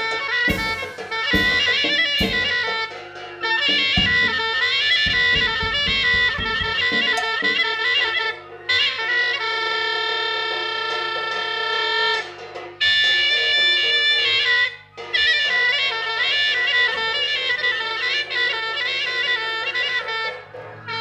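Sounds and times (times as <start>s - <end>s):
drums: 0.0s - 21.0s
reedy wind instrument wailing: 0.0s - 21.0s.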